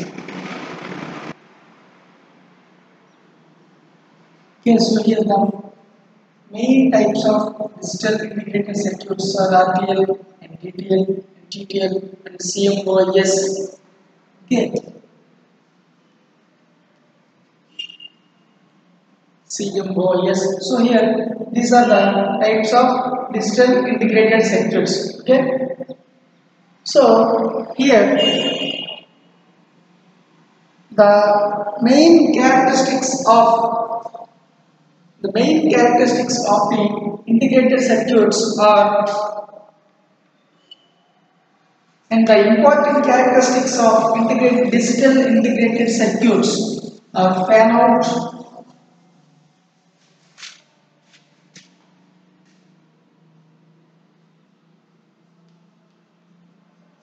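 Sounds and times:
room noise hiss: 0:00.0 - 0:57.0.

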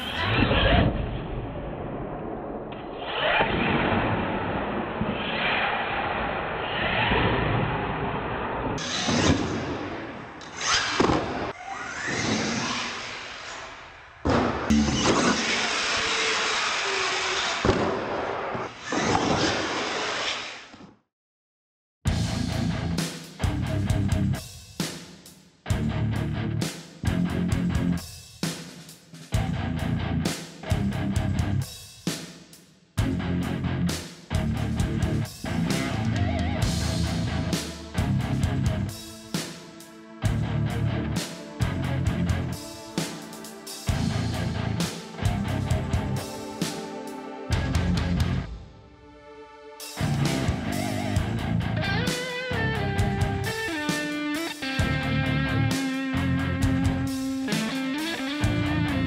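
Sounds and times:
electric motors whirring and revving: 0:10.4 - 0:13.8, 0:14.7 - 0:17.7
rock music with heavy beat: 0:22.1 - 0:48.6, 0:49.8 - 0:59.0.

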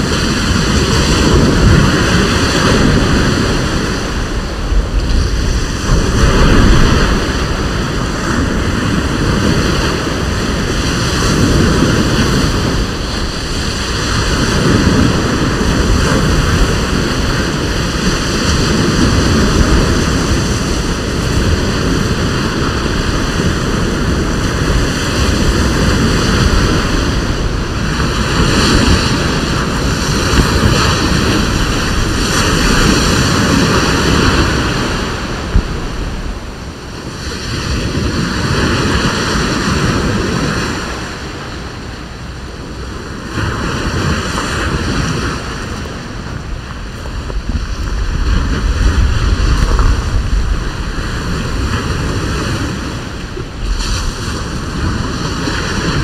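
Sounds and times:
small waves breaking on beach: 0:00.0 - 0:56.0
wind rushing over microphone: 0:00.0 - 0:56.0.

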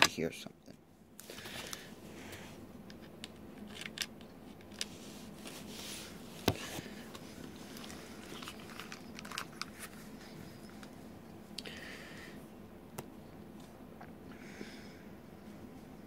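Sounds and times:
faint room hum: 0:00.0 - 0:16.0
small clicks and handling noise: 0:01.2 - 0:05.6, 0:06.4 - 0:11.7.

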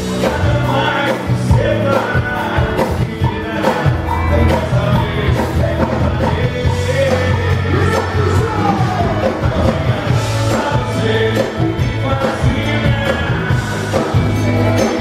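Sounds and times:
live rock band music: 0:00.0 - 0:15.0
man singing: 0:00.0 - 0:15.0.

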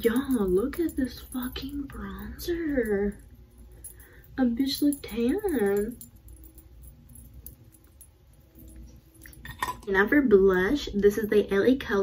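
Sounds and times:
small objects clicking and clinking: 0:00.0 - 0:10.0
faint room hum: 0:00.0 - 0:12.0.

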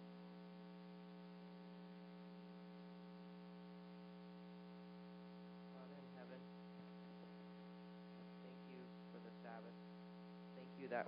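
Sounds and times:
electrical mains hum: 0:00.0 - 0:11.0
faint person speaking: 0:05.7 - 0:06.5.

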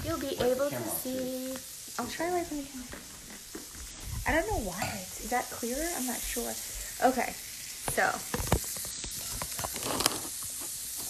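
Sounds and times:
patties sizzling in frying pan: 0:00.0 - 0:11.0.

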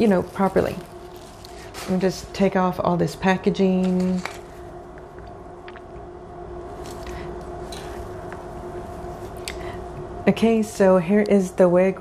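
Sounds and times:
wig and packaging rustling: 0:00.0 - 0:02.6, 0:06.7 - 0:08.2
steady background hum: 0:00.0 - 0:12.0.

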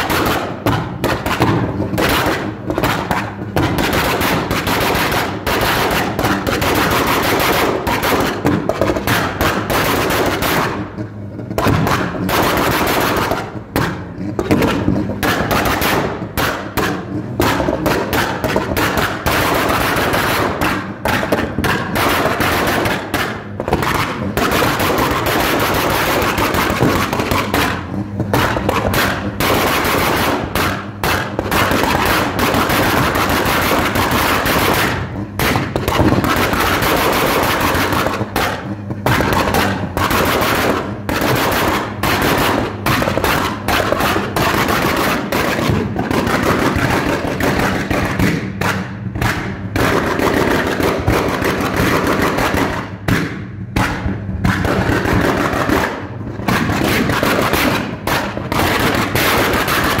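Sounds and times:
car engine revving: 0:00.0 - 1:00.0
exhaust crackles and bangs: 0:00.0 - 1:00.0.

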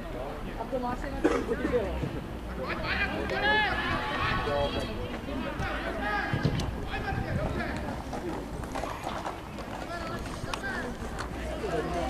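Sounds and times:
voices calling out: 0:00.0 - 0:12.0
wind rumble on microphone: 0:05.6 - 0:08.7.

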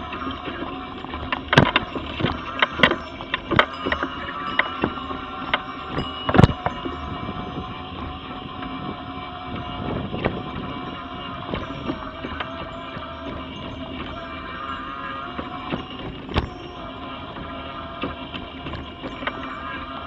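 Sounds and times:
scooter knocking over slab joints: 0:00.0 - 0:07.2, 0:09.6 - 0:20.0
electric motor whine: 0:00.0 - 0:20.0.

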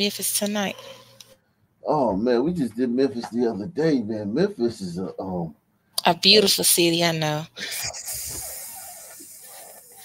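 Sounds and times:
breathy hiss: 0:07.6 - 0:10.0.

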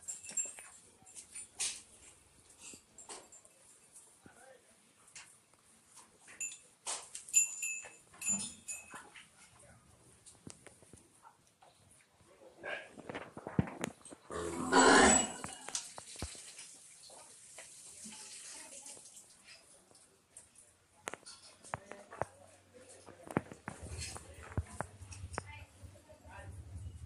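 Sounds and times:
cattle noisy burst: 0:14.3 - 0:15.4.

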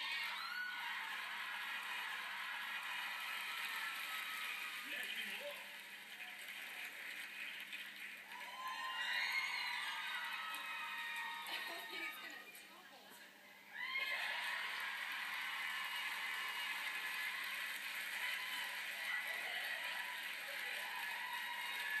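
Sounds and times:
studio audience cheering and whooping: 0:00.0 - 0:05.6, 0:08.2 - 0:12.5, 0:13.7 - 0:22.0.

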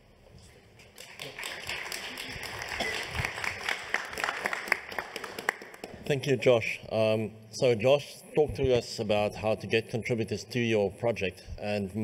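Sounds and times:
audience applause: 0:01.0 - 0:06.0.

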